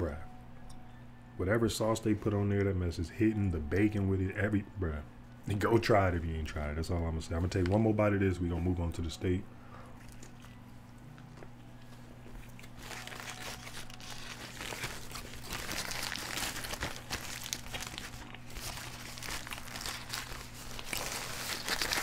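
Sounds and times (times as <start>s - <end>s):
low steady hum: 0.0s - 22.0s
paper wrapper crinkling: 11.8s - 22.0s.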